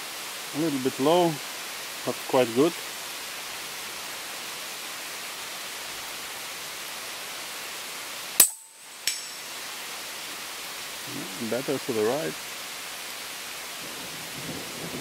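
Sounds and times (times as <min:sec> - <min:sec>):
steady hiss: 0:00.0 - 0:15.0
bullet striking steel target: 0:08.4 - 0:09.5.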